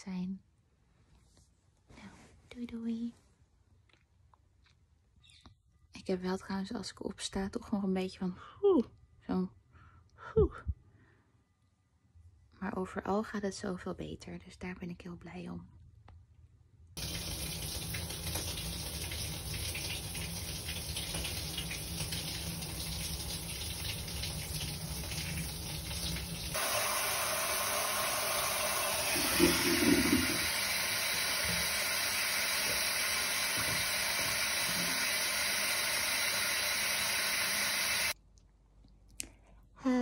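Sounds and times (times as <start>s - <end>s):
water running in a bathtub: 17.0s - 38.2s.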